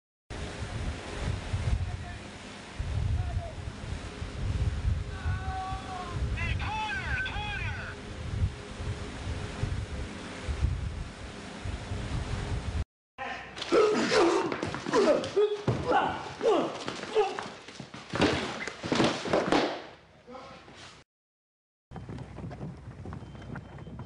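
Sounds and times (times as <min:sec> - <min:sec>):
person shouting: 0:05.1 - 0:08.0, 0:13.2 - 0:17.5.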